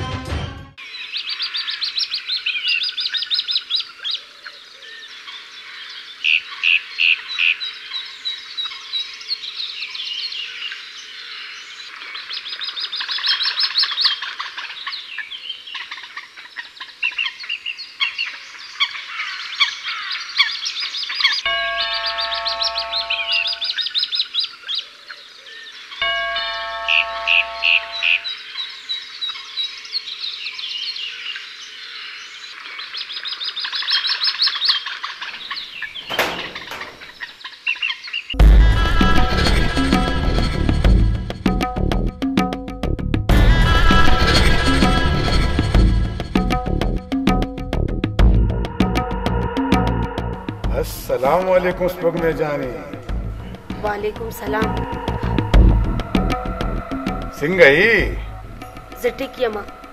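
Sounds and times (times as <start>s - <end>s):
small birds chirping and trilling: 0.8s - 38.4s
held chime-like tones: 21.5s - 23.8s, 26.0s - 28.3s.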